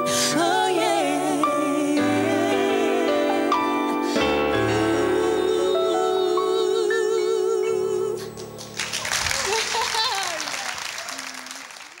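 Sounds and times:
applause: 8.6 - 12.0.

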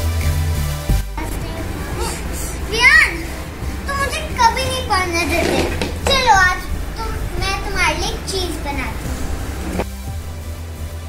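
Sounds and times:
steady low hum: 0.9 - 11.0
child's high-pitched exclamation: 1.9 - 8.8.

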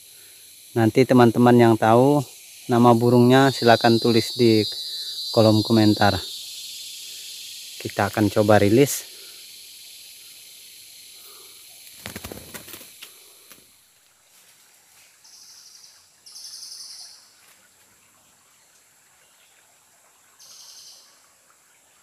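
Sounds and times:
high whistled bird calls: 15.3 - 17.3.

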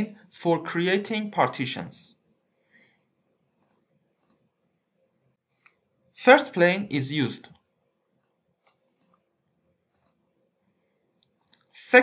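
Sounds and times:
computer mouse clicks: 3.6 - 4.5, 8.2 - 9.2, 9.9 - 10.3, 11.2 - 11.7.

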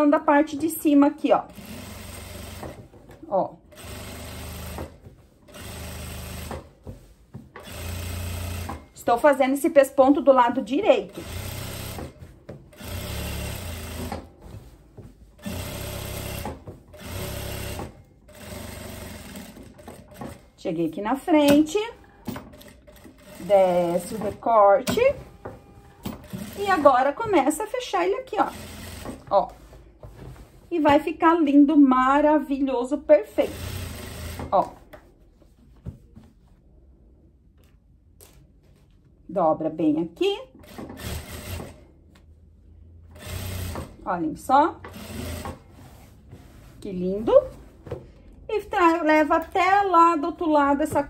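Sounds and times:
sewing machine running: 1.5 - 2.8, 3.7 - 6.6, 7.6 - 8.8, 11.1 - 14.2, 15.4 - 20.4, 22.5 - 24.5, 26.1 - 27.0, 28.4 - 29.2, 33.3 - 34.5, 40.6 - 41.8, 43.2 - 44.0, 44.9 - 45.6
fabric handling: 29.3 - 31.2, 45.6 - 48.2.

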